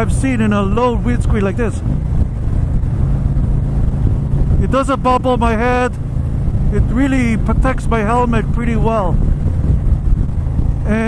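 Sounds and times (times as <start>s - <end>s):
motorcycle engine running: 0.0s - 11.0s
wind rushing over microphone: 0.0s - 11.0s.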